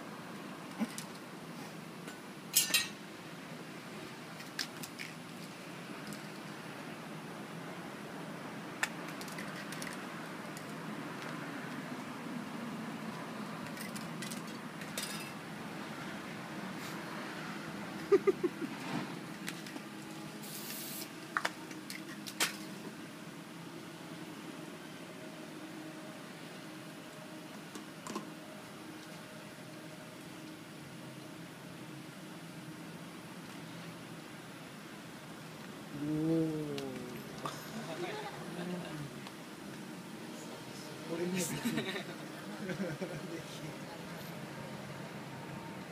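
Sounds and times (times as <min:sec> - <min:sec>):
outdoor background noise: 0:00.0 - 0:45.9
spray cans clicking and rattling: 0:08.8 - 0:10.8
person exclaiming oooh: 0:35.9 - 0:37.5.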